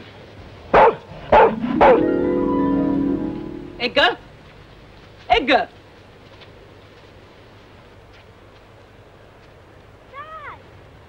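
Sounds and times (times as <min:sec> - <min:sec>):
dog barking: 0:00.7 - 0:02.0
held musical chord: 0:01.1 - 0:04.3.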